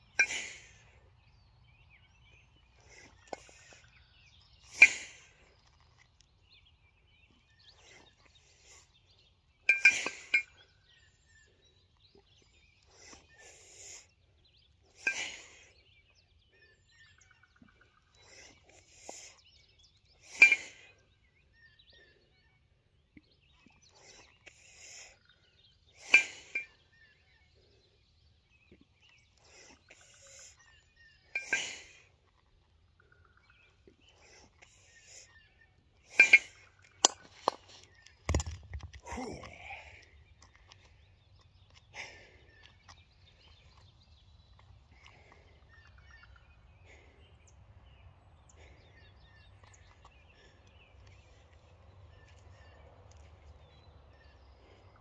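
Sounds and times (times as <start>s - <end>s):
kettlebells clinking: 9.7s - 10.5s.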